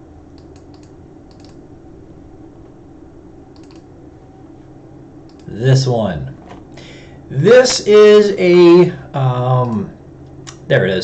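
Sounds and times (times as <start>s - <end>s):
steady low hum: 0.0s - 11.0s
computer keyboard clicks: 0.4s - 1.6s, 3.5s - 3.9s.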